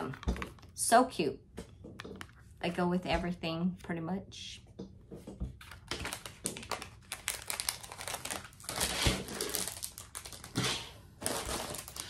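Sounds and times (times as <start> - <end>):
packaging crinkling: 5.6 - 12.0.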